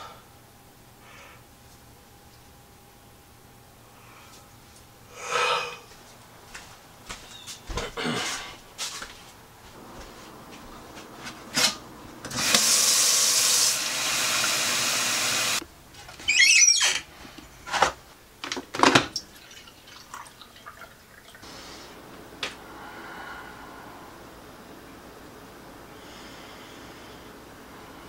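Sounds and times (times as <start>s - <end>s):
tap water running into sink: 12.3s - 15.6s.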